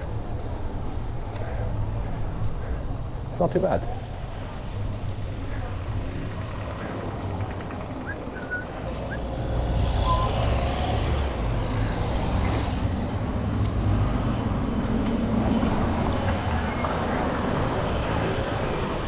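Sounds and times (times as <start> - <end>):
bicycle road rumble: 0.0 - 19.0
passing car traffic: 0.0 - 19.0
wind: 0.0 - 19.0.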